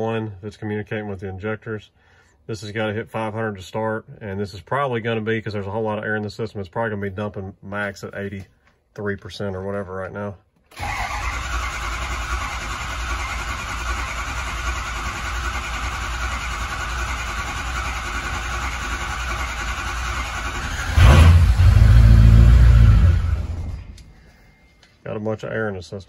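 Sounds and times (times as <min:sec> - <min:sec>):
diesel engine cranking on starter: 0:10.7 - 0:24.2
diesel engine rumbling: 0:10.8 - 0:24.2.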